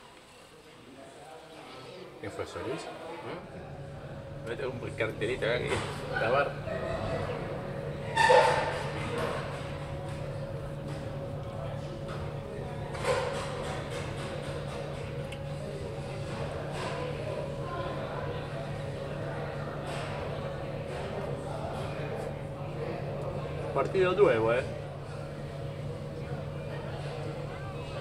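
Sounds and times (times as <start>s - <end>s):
steady low hum: 3.3s - 28.0s
distant voices: 3.4s - 28.0s.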